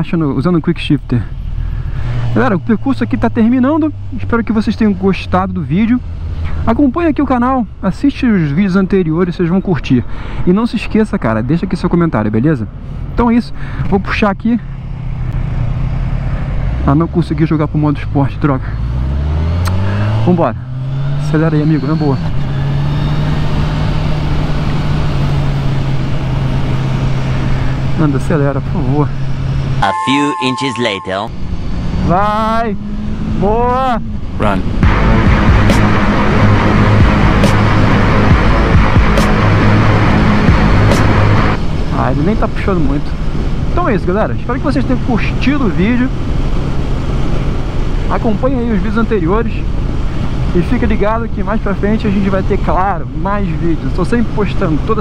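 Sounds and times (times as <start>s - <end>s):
wind and road noise: 0.0s - 29.8s, 31.3s - 55.0s
motorcycle engine cruising: 14.7s - 29.8s, 31.3s - 44.1s.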